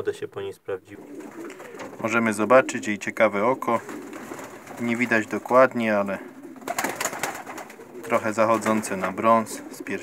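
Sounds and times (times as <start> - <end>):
pigeons cooing: 0.9 - 10.0.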